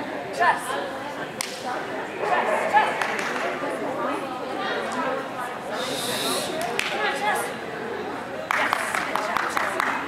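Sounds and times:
murmur of indoor hall: 0.0s - 10.0s.

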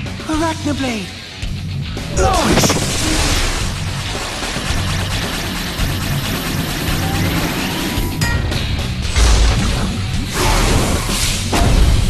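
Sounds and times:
action music with pulsing bass: 0.0s - 12.0s.

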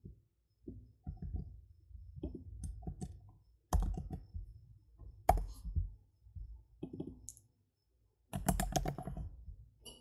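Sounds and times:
typing on computer keyboard: 2.6s - 4.4s, 8.3s - 9.4s.

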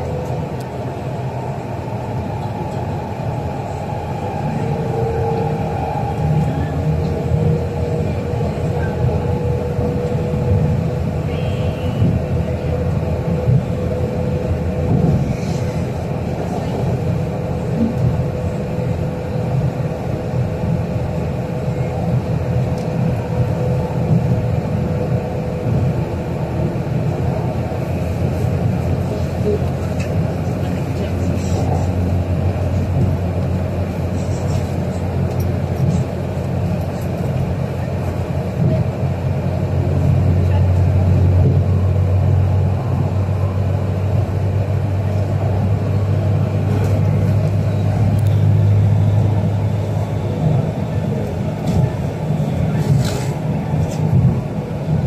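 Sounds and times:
train rumbling on viaduct: 0.0s - 55.0s.

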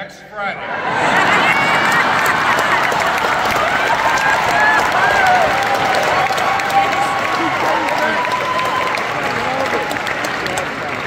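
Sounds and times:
audience laughing: 0.6s - 4.2s
audience applauding: 0.8s - 11.0s
voices rising above clapping: 0.8s - 11.0s.

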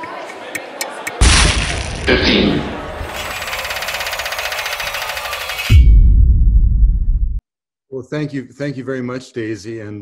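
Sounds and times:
rapid mechanical rattle: 3.2s - 5.7s.

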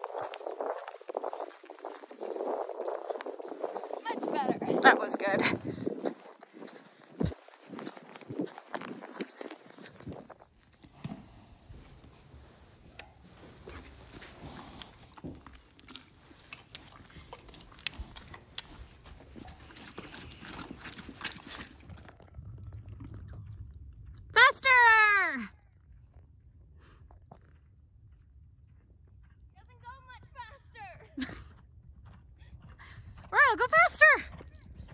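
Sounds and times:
horse hoofbeats in snow: 0.0s - 22.0s, 26.8s - 34.9s
horse chewing: 5.8s - 24.3s.

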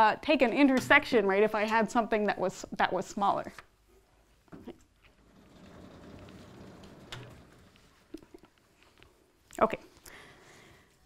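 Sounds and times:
blackboard panels sliding: 5.1s - 8.1s.

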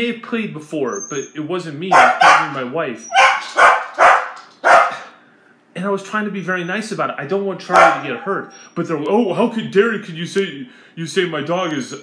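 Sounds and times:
dog barking: 1.9s - 5.1s, 7.7s - 8.5s.

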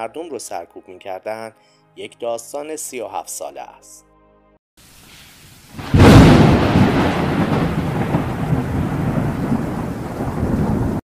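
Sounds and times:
rain hiss: 4.8s - 11.0s
thunder crash and rumble: 5.7s - 11.0s.

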